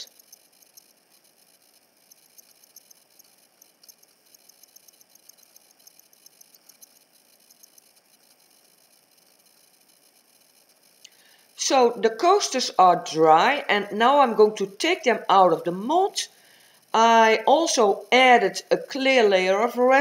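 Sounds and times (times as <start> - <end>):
faint ticks: 0.0 - 12.0.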